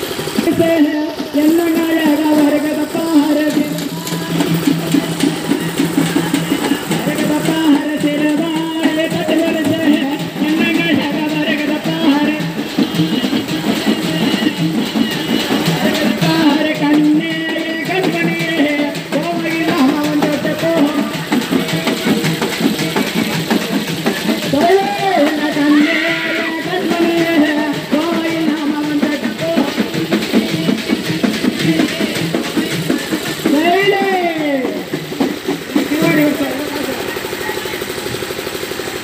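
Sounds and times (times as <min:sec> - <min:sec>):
dense steady drumbeats: 0:00.0 - 0:39.0
person speaking: 0:00.4 - 0:12.7, 0:35.6 - 0:37.8.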